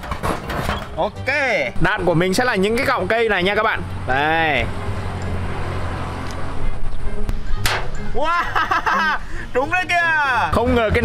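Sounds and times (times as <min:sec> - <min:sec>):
background music: 0:00.1 - 0:11.0.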